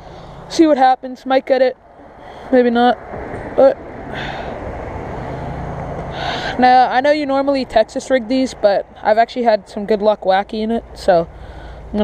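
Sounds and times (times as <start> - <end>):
vehicle passing: 0.0 - 12.0.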